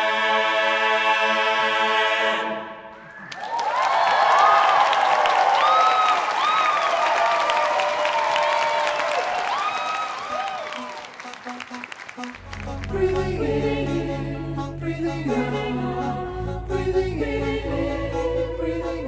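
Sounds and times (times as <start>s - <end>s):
men's chorus singing a chord: 0.0s - 2.8s, 12.4s - 19.0s
audience applause and cheering: 3.2s - 14.2s.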